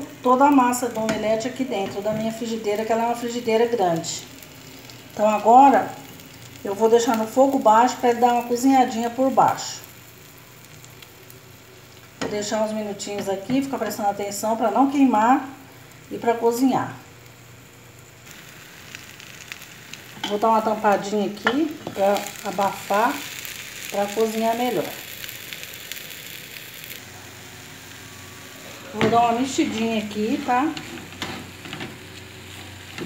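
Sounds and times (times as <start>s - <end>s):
omelette sizzling in frying pan: 0.0s - 33.0s
small crackles: 2.6s - 12.2s, 17.1s - 27.1s.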